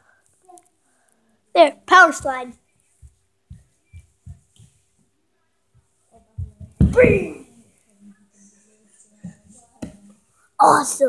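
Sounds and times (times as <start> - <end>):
soft dull low thumps: 5.8 - 7.4.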